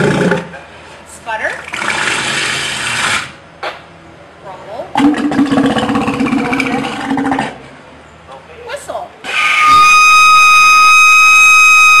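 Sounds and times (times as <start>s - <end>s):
high-pitched steady tone: 9.5s - 12.0s.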